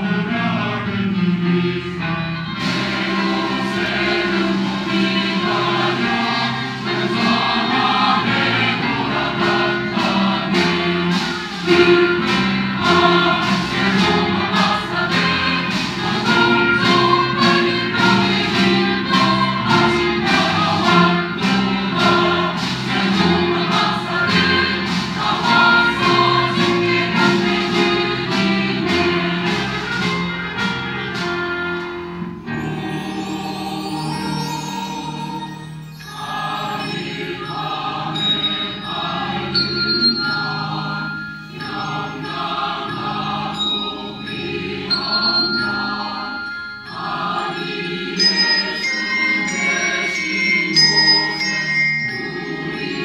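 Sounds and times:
choir singing a carol: 0.0 - 53.0
instrumental accompaniment: 0.0 - 53.0.

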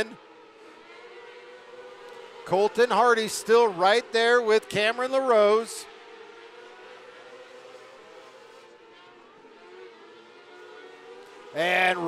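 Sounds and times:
faint racing engines whining: 0.0 - 12.0.

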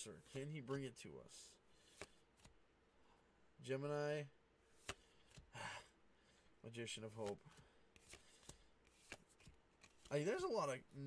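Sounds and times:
trading cards flicking: 8.0 - 10.2.

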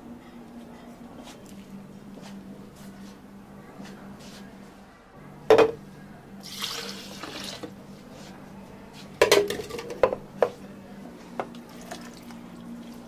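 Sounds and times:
milk pouring into plastic cup: 6.4 - 7.7, 11.6 - 12.6.

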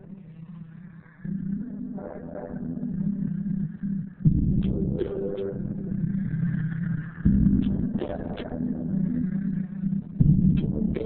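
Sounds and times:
muffled lo-fi hip-hop beat: 7.2 - 11.0.

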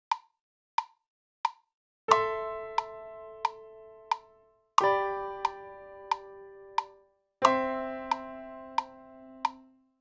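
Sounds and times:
metronome ticks: 0.1 - 9.8.

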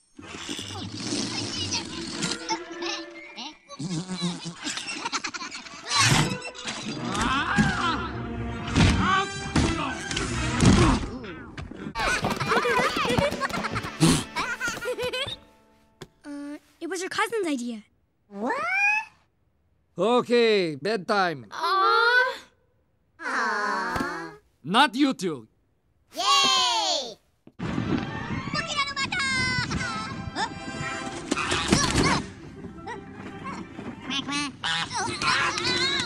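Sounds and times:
cartoon laughter: 1.4 - 6.4, 12.0 - 15.4, 32.9 - 36.0.

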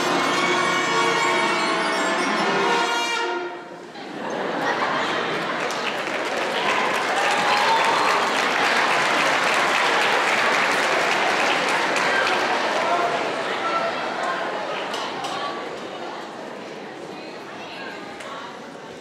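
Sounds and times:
audience applause: 4.6 - 15.0.

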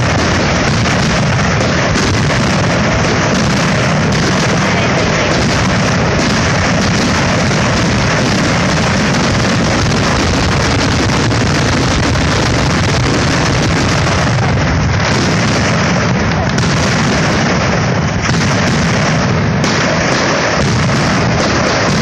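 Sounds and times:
fireworks barrage: 0.0 - 22.0.

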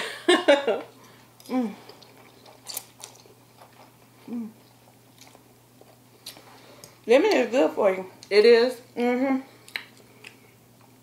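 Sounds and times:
chewing noodles: 1.1 - 7.0
person humming: 1.5 - 1.9, 4.2 - 4.6
wet mouth clicks: 9.6 - 10.4.

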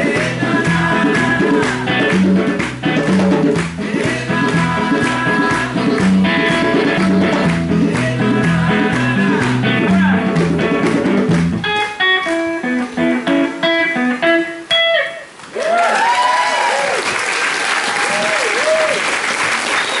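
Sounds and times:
band playing: 0.0 - 15.3
guitar picking single notes: 0.0 - 15.4
audience applause and cheers: 15.5 - 20.0.

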